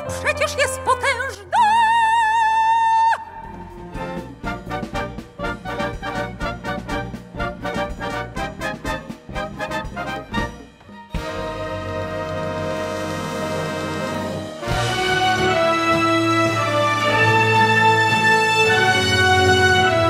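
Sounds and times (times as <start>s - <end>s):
orchestra playing: 3.4s - 20.0s.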